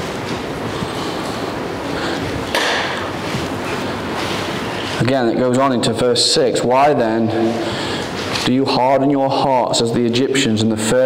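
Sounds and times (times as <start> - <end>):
steady rushing noise: 0.0 - 9.2.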